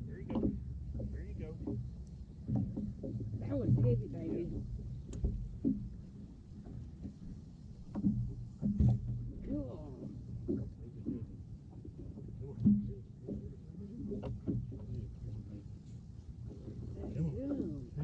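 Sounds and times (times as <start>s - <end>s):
low rumble: 0.0s - 18.0s
muffled talking: 1.0s - 1.7s, 3.4s - 4.6s, 12.2s - 15.8s, 16.5s - 18.0s.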